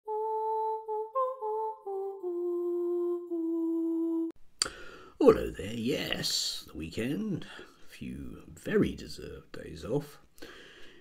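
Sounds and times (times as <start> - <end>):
person humming a tune: 0.0 - 4.8.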